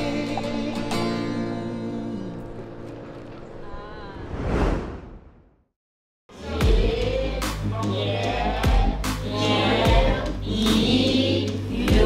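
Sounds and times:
whoosh transition effect: 4.2 - 5.5.

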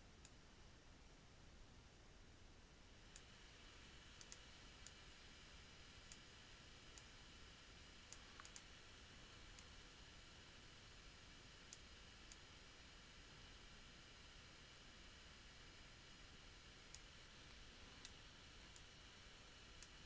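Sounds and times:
low room hiss: 0.0 - 20.0
computer mouse clicks: 4.2 - 5.0, 8.1 - 8.8, 11.6 - 12.5, 16.8 - 18.9, 19.8 - 20.0.

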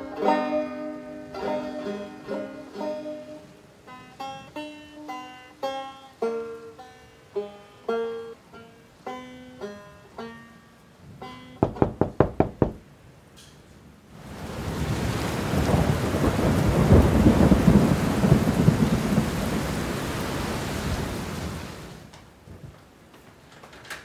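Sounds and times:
banjo strums: 0.0 - 12.6
heavy rain: 10.9 - 12.8, 14.0 - 22.6
rolling thunder: 14.4 - 21.8.

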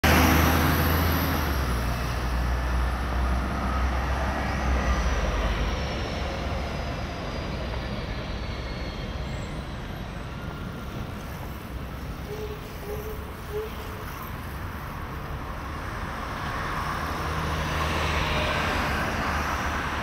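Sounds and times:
heavy vehicle rumble: 0.0 - 20.0
steady traffic hum: 0.0 - 20.0.

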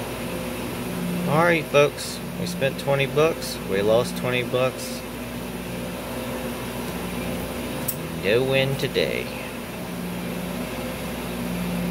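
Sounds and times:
machinery hum: 0.0 - 11.9.

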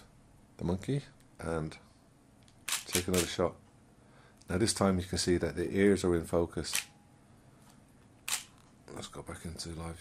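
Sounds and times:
camera shutter clack: 2.6 - 3.4, 6.7 - 6.9, 8.3 - 8.6.

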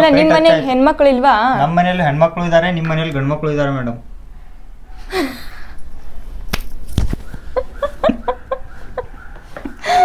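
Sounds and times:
sharp smacks: 6.5 - 7.3
people laughing: 7.4 - 10.0.

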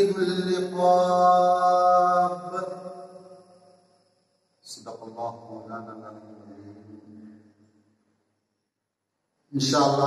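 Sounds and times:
man chanting melodically: 0.0 - 2.8, 4.7 - 7.2, 9.5 - 10.0.

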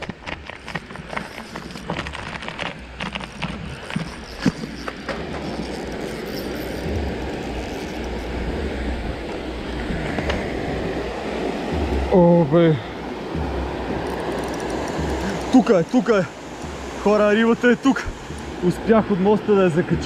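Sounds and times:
sharp clicks and knocks: 0.0 - 10.9, 11.6 - 12.1, 13.3 - 18.6
fast-flowing river water: 0.0 - 20.0.

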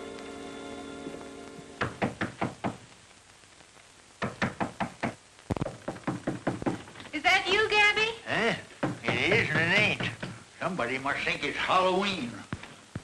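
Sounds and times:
knocking on a door: 1.8 - 2.8, 4.2 - 6.9, 8.8 - 10.4.

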